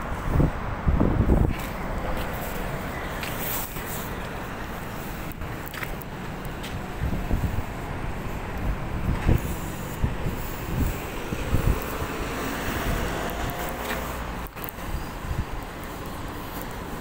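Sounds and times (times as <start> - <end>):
wind buffeting microphone: 0.0 - 3.8, 4.4 - 17.0
outdoor street noise: 0.0 - 17.0.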